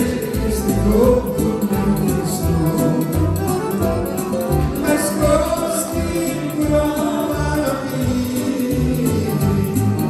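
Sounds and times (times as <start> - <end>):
electronic keyboard accompaniment: 0.0 - 10.0
low bass line: 0.0 - 10.0
piano accordion playing: 0.0 - 10.0.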